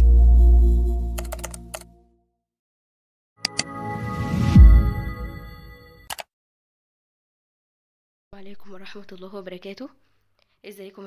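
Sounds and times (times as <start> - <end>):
low bass note: 0.0 - 1.2
keyboard keystroke clicks: 1.2 - 1.9, 3.5 - 3.7.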